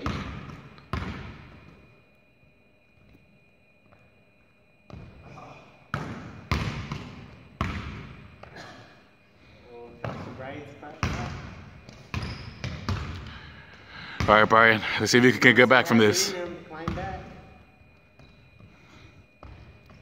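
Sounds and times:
basketball bouncing on wooden floor: 6.0s - 8.1s, 11.0s - 13.2s.

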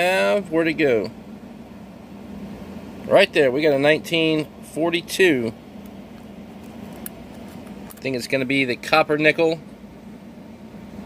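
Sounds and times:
fan hiss: 0.0s - 11.0s.

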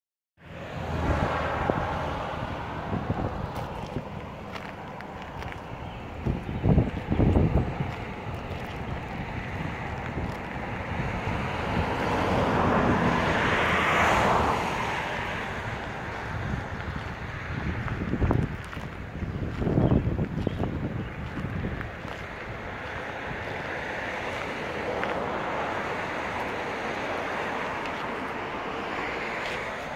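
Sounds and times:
wind buffeting microphone: 0.7s - 29.9s.

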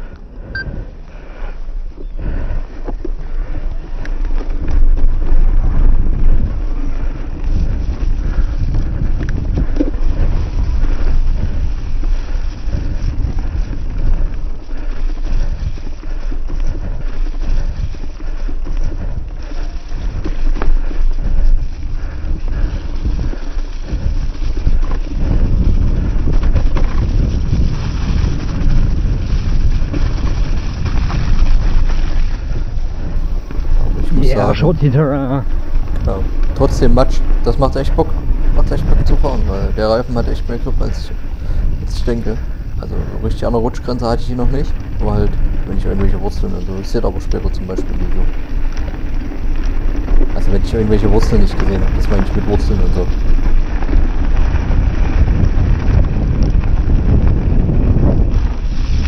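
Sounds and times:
mountain bike rumbling and rattling: 0.0s - 59.0s
wind buffeting microphone: 0.0s - 59.0s.

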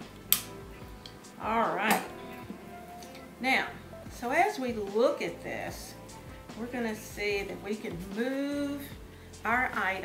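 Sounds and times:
background music with voice: 0.0s - 10.0s
hand cutters snipping wire: 0.2s - 1.2s.

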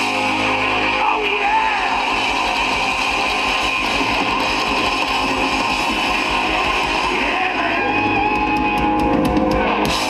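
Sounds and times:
electric guitars: 0.0s - 10.0s
hard rock band playing: 0.0s - 10.0s
steady drum beat: 1.8s - 10.0s.

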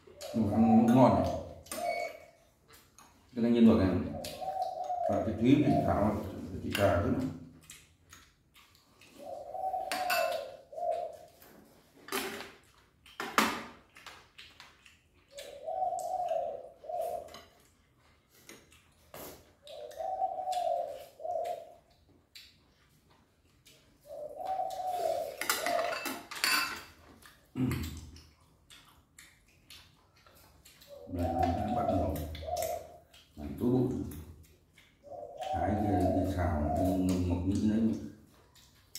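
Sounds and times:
utensils clinking against bowls: 9.9s - 10.4s, 25.3s - 27.0s.

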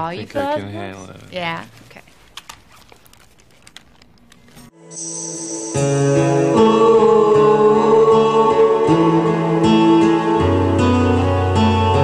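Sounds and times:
headphones rustling and clicking: 1.6s - 4.7s
song with sustained chords: 4.7s - 12.0s.

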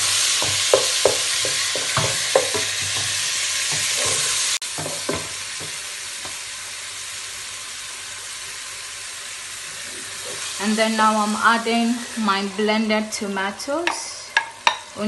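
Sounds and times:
wooden spatula scraping pan: 0.0s - 5.3s
food sizzling in oil: 0.0s - 15.0s.

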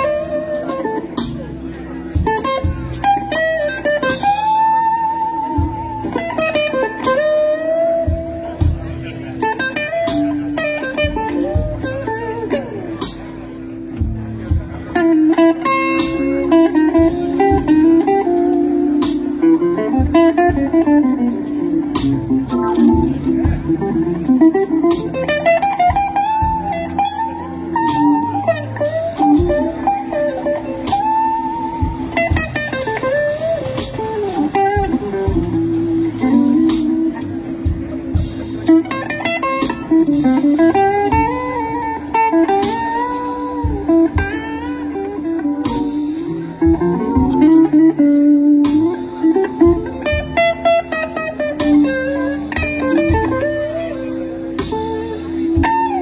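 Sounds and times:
drums: 0.0s - 56.0s
electric bass: 0.0s - 56.0s
electric guitar solo: 0.0s - 56.0s
organ chords: 0.0s - 56.0s.

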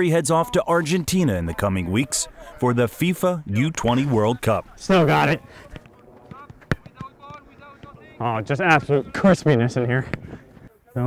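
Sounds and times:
distant players' voices: 0.0s - 11.0s
faint ball touches: 3.6s - 8.2s, 10.0s - 10.8s
soccer ball kick smack: 5.7s - 8.1s.

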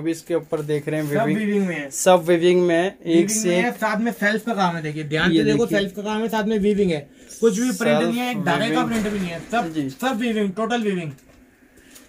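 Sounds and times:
person making wordless vocal sounds: 7.8s - 8.9s.

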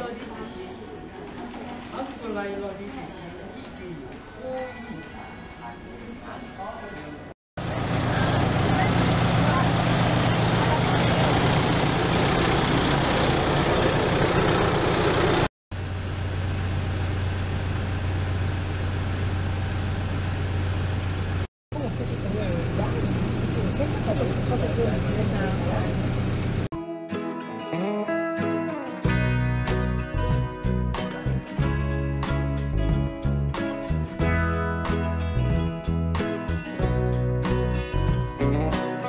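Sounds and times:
minibus engine and road noise: 7.6s - 26.7s.

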